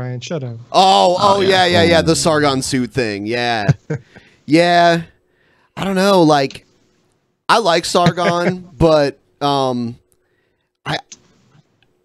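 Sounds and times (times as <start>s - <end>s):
man's clipped vocal sound: 1.2s - 2.9s.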